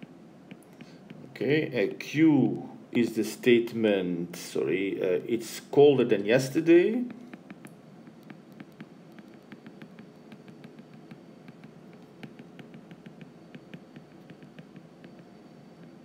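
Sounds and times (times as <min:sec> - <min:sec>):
stylus tapping on glass screen: 0:07.0 - 0:16.0.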